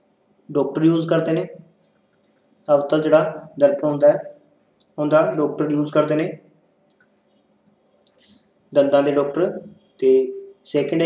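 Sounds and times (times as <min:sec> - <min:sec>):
man lecturing: 0:00.5 - 0:01.8, 0:02.6 - 0:06.5, 0:08.7 - 0:11.0.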